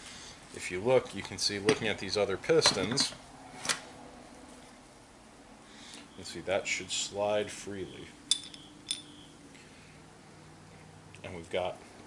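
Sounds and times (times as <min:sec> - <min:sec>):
metallic clinks with ringing: 0:08.3 - 0:09.3.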